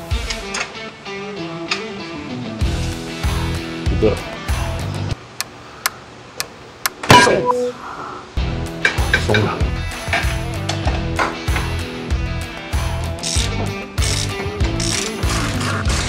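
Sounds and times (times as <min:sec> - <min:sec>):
background music with steady beat: 0:00.0 - 0:05.2, 0:08.4 - 0:16.0
loud metal clank: 0:07.1 - 0:07.6
sharp metallic ticks: 0:13.2 - 0:15.5.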